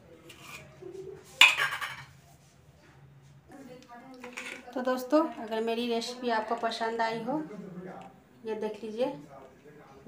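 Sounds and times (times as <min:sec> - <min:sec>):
steel kitchenware clattering: 0:01.4 - 0:02.1.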